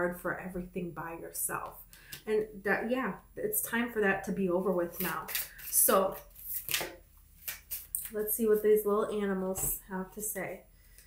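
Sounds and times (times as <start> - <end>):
cards being shuffled: 5.0 - 8.3.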